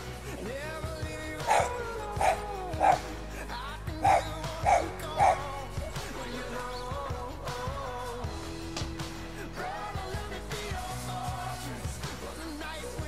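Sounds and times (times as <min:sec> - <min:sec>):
background music: 0:00.0 - 0:13.0
dog barking: 0:01.4 - 0:03.1, 0:03.9 - 0:05.5.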